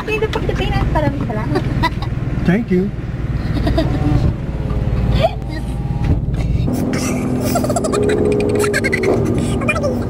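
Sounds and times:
car engine idling: 0.0s - 10.0s
people laughing: 3.4s - 4.2s, 7.0s - 9.4s.

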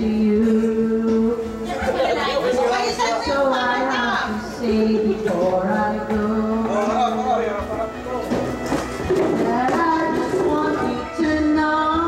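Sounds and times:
people chattering: 1.6s - 8.6s.

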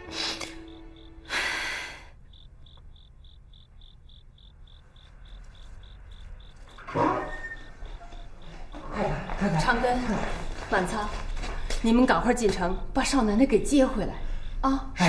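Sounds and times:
cricket chirping: 0.0s - 15.0s.

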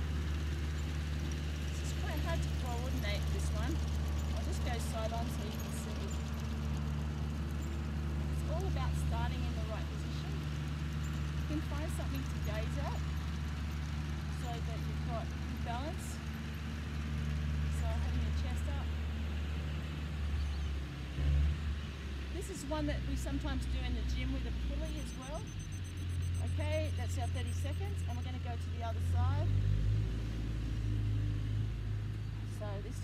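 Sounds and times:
tractor engine humming: 0.0s - 29.6s.

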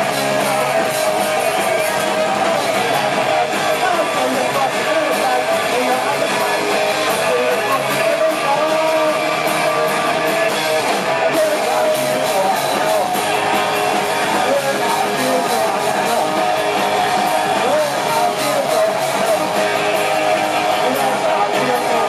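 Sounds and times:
rock band playing loudly: 0.0s - 22.0s.

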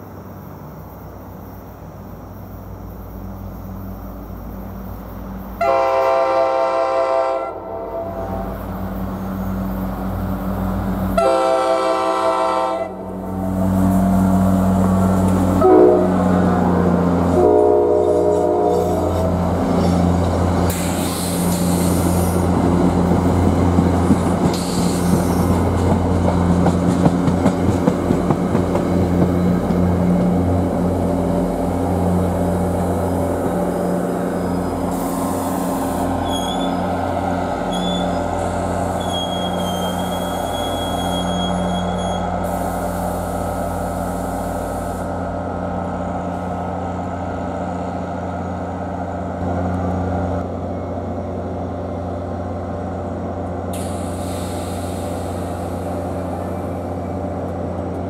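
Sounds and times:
locomotive horn: 5.6s - 8.6s, 11.1s - 19.5s
coaches clicking over rail joints: 13.8s - 15.6s, 18.3s - 31.6s.

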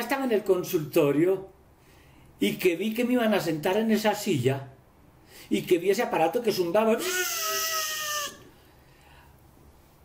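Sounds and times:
man imitating drill whine: 7.0s - 8.4s.

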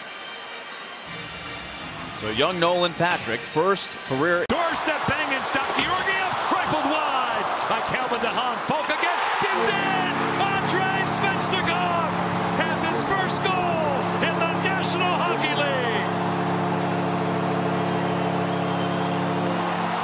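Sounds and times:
crowd cheering: 0.0s - 1.8s, 4.5s - 20.0s
arena goal horn: 9.5s - 20.0s
whistles and whoops: 17.8s - 20.0s.

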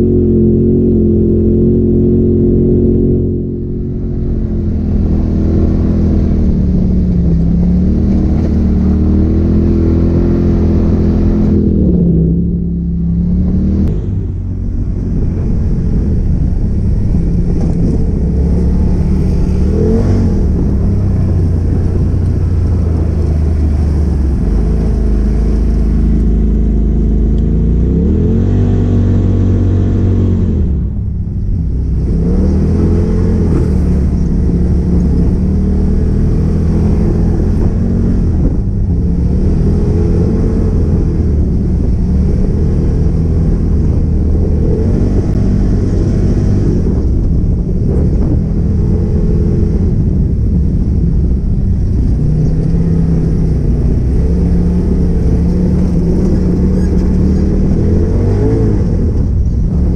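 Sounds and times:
vehicle engine revving: 0.0s - 59.9s.

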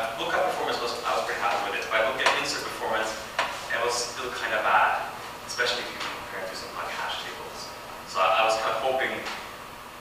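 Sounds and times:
man speaking: 0.0s - 9.4s.

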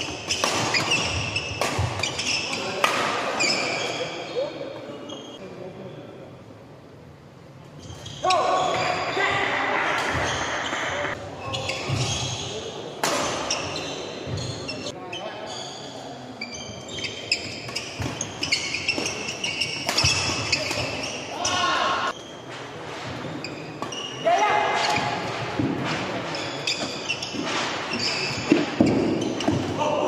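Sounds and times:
shoes squeaking on court: 0.0s - 2.8s, 3.4s - 4.4s, 7.8s - 9.2s, 10.0s - 24.2s, 26.2s - 29.8s
voices and calls in hall: 8.1s - 17.6s, 18.5s - 30.0s.

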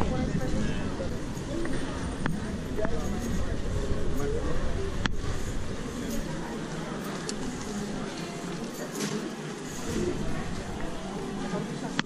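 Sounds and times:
passers-by talking: 0.0s - 12.0s.

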